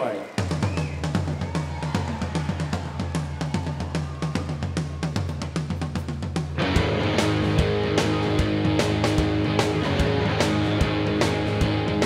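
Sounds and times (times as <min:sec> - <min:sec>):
rock drum kit: 0:00.4 - 0:12.0
electric guitar: 0:06.6 - 0:12.0.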